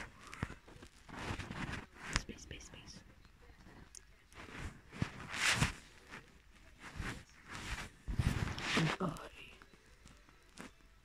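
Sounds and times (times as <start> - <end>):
child whispering: 8.8 - 9.6.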